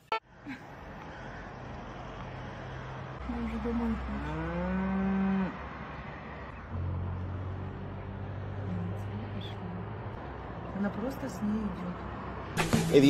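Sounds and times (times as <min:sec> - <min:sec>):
cow mooing: 0:04.2 - 0:05.6.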